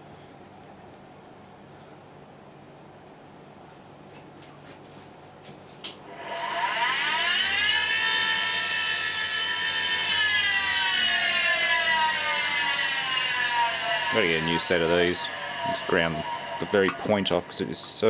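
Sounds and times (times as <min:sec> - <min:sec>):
electric grinder whine: 0:06.1 - 0:18.0
metal grinding hiss: 0:11.6 - 0:18.0.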